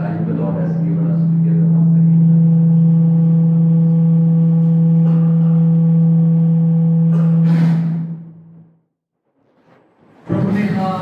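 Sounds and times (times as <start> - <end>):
sound system low hum: 0.0 - 9.0.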